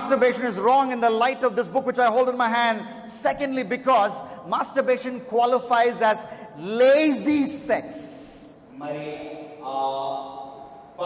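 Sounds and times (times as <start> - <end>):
man speaking into a microphone: 0.0 - 10.5.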